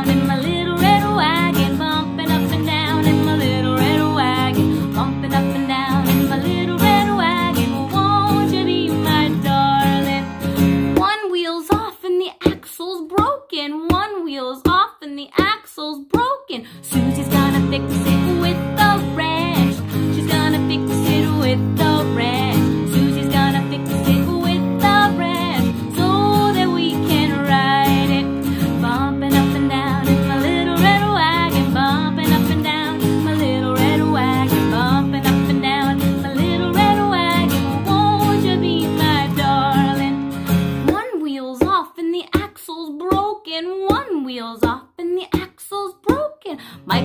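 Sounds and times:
acoustic guitar strumming: 0.0 - 11.1, 16.9 - 41.0, 46.7 - 47.0
person singing: 0.0 - 47.0.

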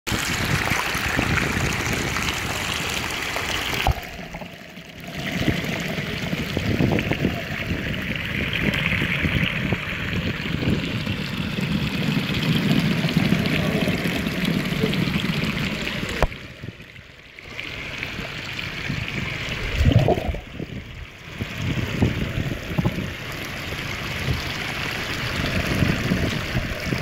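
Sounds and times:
muffled underwater current rush: 0.1 - 27.0
stream trickling over stones: 0.1 - 27.0.

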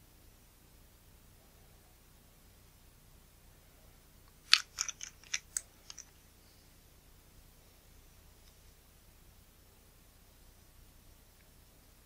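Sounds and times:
crisp packaging crackles: 4.5 - 6.1.

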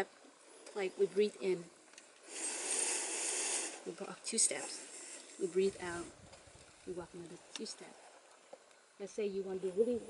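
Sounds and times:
deep in-breath: 2.2 - 3.9.

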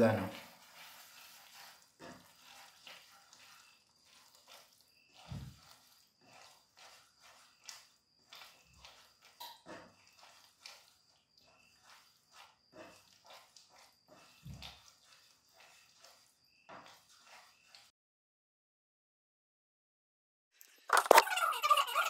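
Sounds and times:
spoon scraping frying pan: 0.4 - 17.9.

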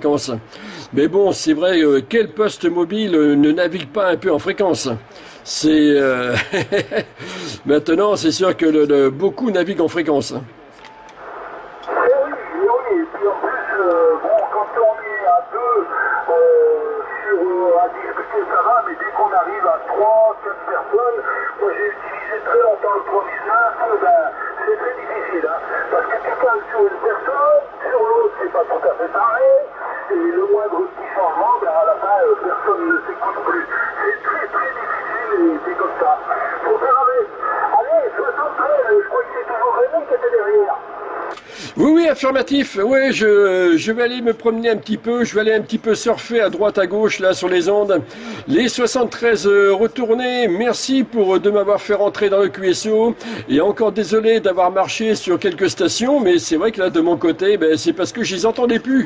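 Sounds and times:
radio background hiss: 0.0 - 59.0
voice over radio speaker: 11.3 - 59.0.

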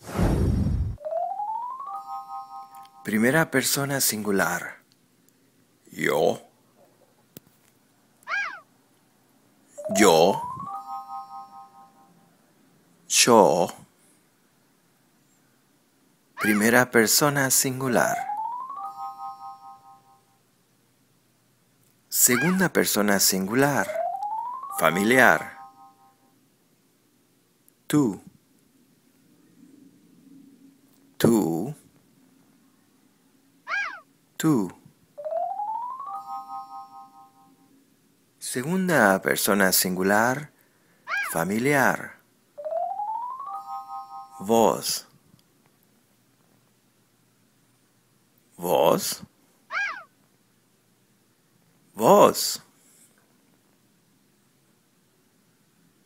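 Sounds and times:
faint background hum: 0.2 - 56.0
cat meowing: 8.2 - 8.7, 33.6 - 34.1, 41.1 - 41.4, 49.7 - 50.1.

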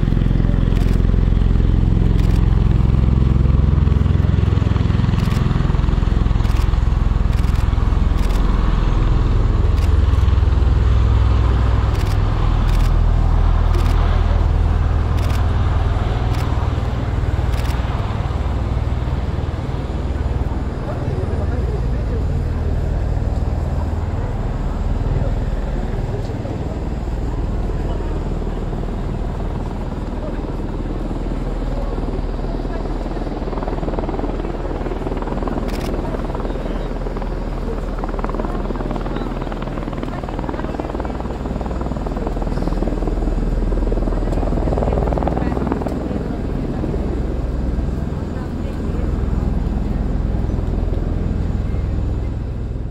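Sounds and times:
aircraft engine noise: 0.0 - 52.9
deep rotor drone: 0.0 - 52.9.

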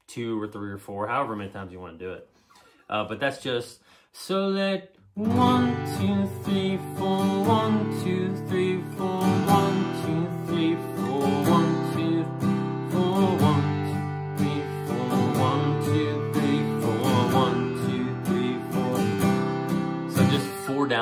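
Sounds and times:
acoustic guitar strumming: 5.2 - 21.0.

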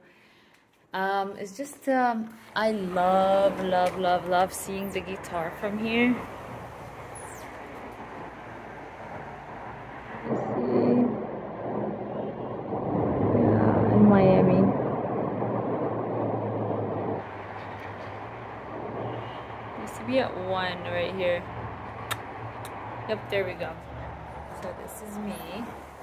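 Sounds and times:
highway traffic hiss: 2.4 - 10.3.

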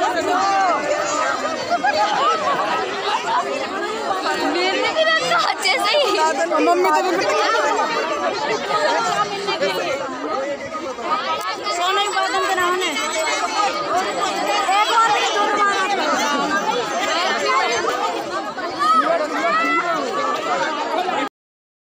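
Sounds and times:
people chattering: 0.0 - 21.3.

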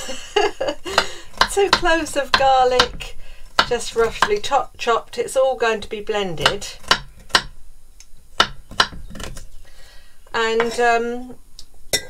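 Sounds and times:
knife chopping on wooden board: 0.9 - 4.5, 6.4 - 7.5, 8.4 - 9.4.

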